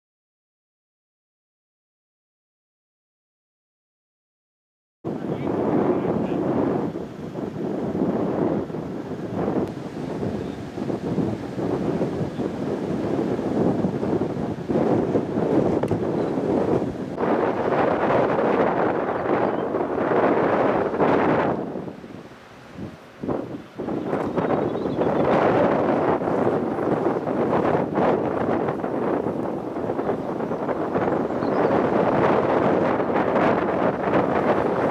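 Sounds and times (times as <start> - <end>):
wind buffeting microphone: 5.1 - 34.9.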